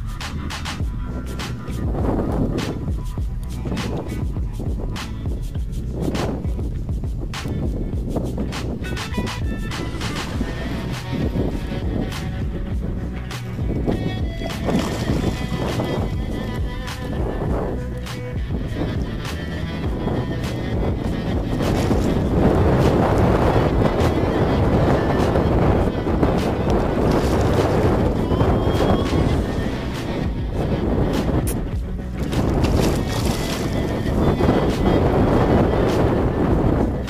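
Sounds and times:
wind buffeting microphone: 0.0s - 37.0s.

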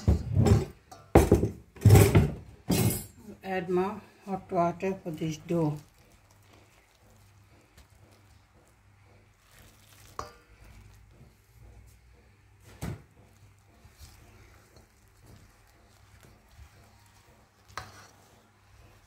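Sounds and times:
spoon mixing in bowl: 4.0s - 19.0s.

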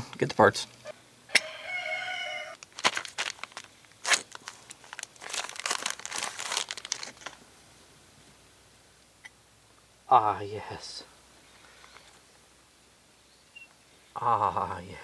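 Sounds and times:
plastic bag crinkling: 2.6s - 7.4s.

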